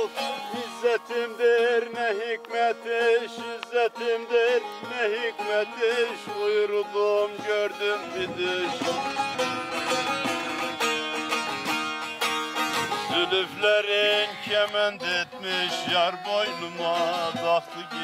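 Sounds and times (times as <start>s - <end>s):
long-necked lute plucked and strummed: 0.0s - 18.0s.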